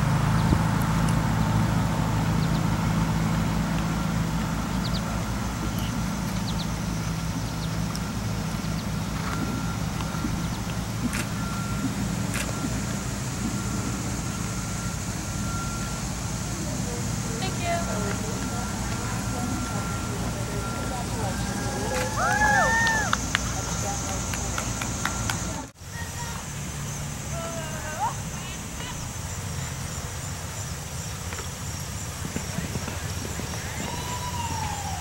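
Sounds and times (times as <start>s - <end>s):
vehicle engine rumbling: 0.0s - 35.0s.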